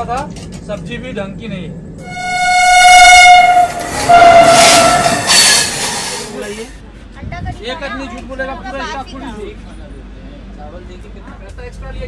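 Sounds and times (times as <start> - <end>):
moving train rushing: 0.0 - 7.2
train horn blasts: 2.0 - 6.4.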